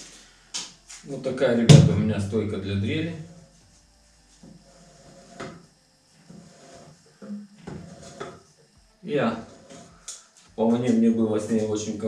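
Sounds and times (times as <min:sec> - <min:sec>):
person speaking: 0:01.1 - 0:03.3, 0:10.6 - 0:12.0.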